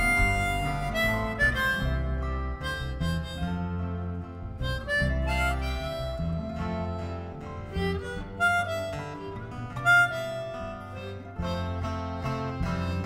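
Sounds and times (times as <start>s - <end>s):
bass line: 0.0s - 13.0s
harmonica solo: 0.0s - 13.0s
strummed guitar: 0.0s - 13.0s.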